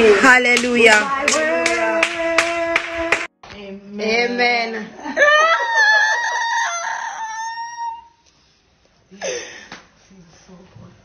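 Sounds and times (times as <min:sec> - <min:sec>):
hands clapping in a beat: 0:00.5 - 0:03.6.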